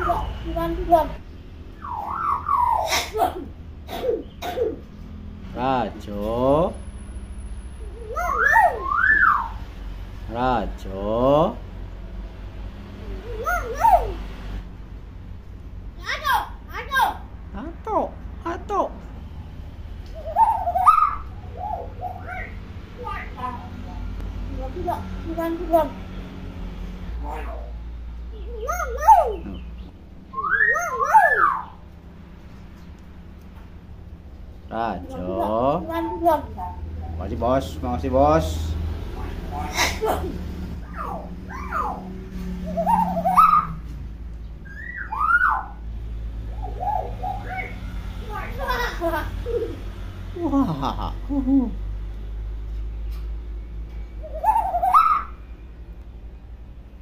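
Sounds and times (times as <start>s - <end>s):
myna calling: 0.0s - 4.9s, 7.8s - 9.7s, 20.1s - 26.1s, 27.2s - 32.0s, 34.7s - 44.0s, 44.6s - 49.9s, 54.2s - 55.6s
bird whistling calls: 1.7s - 3.2s, 7.8s - 9.6s, 20.1s - 22.6s, 28.5s - 31.8s, 42.6s - 43.8s, 44.6s - 45.8s, 46.6s - 47.9s, 54.0s - 55.6s.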